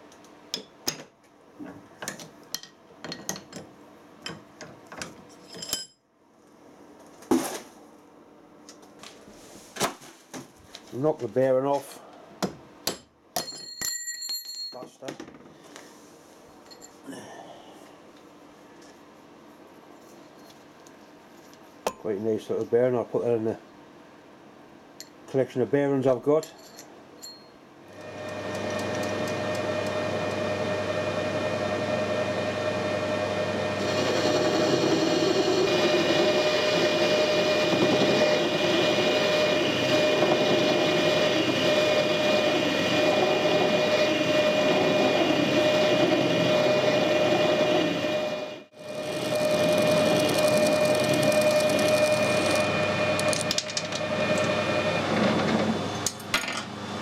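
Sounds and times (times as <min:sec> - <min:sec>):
lathe tool cutting steel: 0:28.0 - 0:55.8
lathe motor running: 0:28.0 - 0:56.1.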